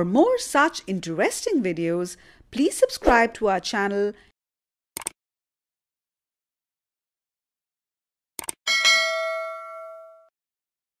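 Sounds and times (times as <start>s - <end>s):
notification bell ding: 8.7s - 10.3s.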